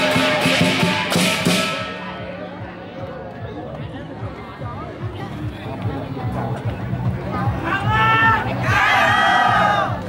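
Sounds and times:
drum beat: 0:00.0 - 0:02.3
group of voices shouting: 0:07.6 - 0:10.0.

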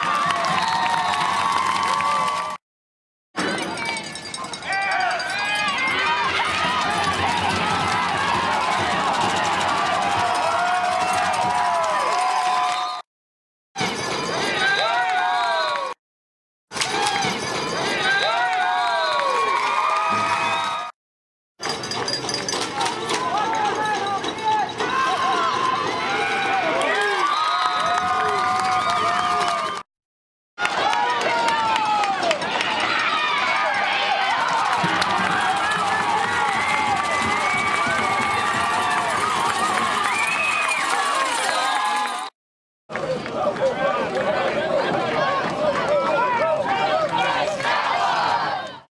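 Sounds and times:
spectators shouting and cheering: 0:00.0 - 0:02.6, 0:03.4 - 0:13.1, 0:14.2 - 0:16.0, 0:16.7 - 0:21.0, 0:22.7 - 0:29.9, 0:30.6 - 0:42.3, 0:42.9 - 0:48.9.

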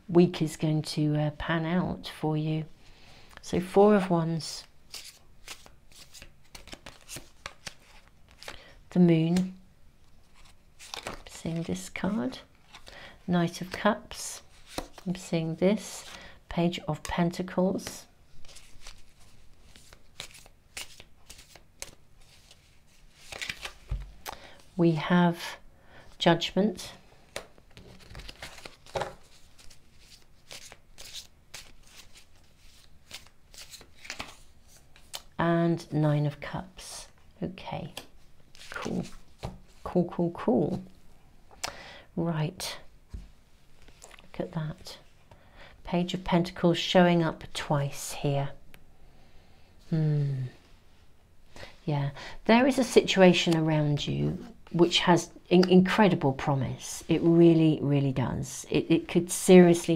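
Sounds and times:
cards being shuffled: 0:04.6 - 0:08.6, 0:10.2 - 0:11.9, 0:14.4 - 0:15.2, 0:17.8 - 0:24.5, 0:27.3 - 0:35.4.

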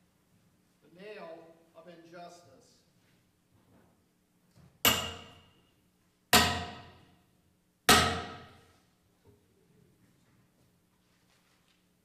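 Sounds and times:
loud hammer blows: 0:06.4 - 0:07.0, 0:07.9 - 0:08.6.

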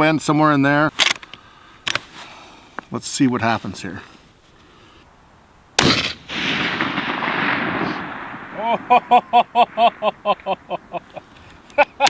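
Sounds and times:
rifle shot echoing: 0:05.8 - 0:11.1
person laughing: 0:08.6 - 0:12.0.

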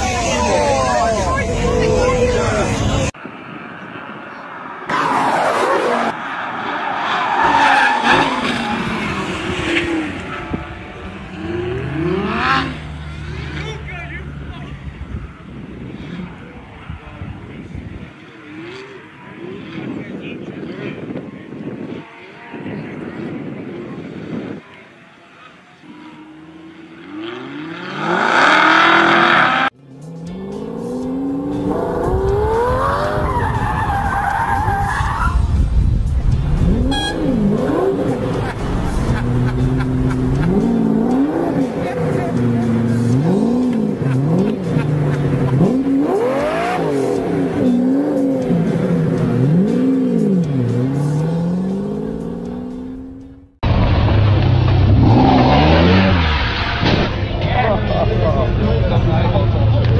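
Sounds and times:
sports car engines revving: 0:04.0 - 0:24.6, 0:25.3 - 0:59.9
tyres squealing: 0:32.5 - 0:35.5.

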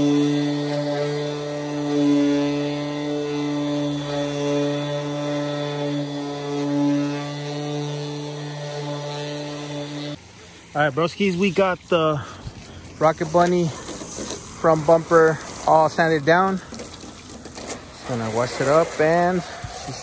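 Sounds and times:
orbital sander running: 0:00.0 - 0:20.0.

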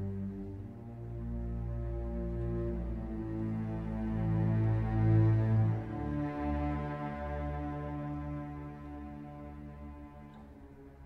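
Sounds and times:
orchestra playing low notes: 0:00.0 - 0:11.0.

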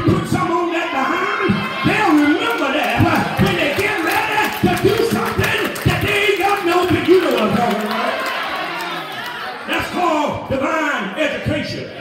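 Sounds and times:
man chanting preaching: 0:00.0 - 0:08.1
congregation calling back: 0:00.0 - 0:12.0.

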